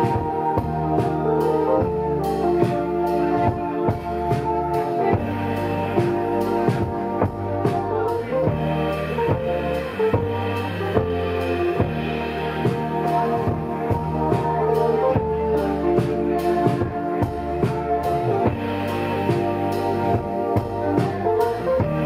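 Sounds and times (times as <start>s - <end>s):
drum kit steady beat: 0.0s - 22.0s
electric bass: 0.0s - 22.0s
electric guitar: 0.0s - 22.0s
keyboard: 0.0s - 22.0s.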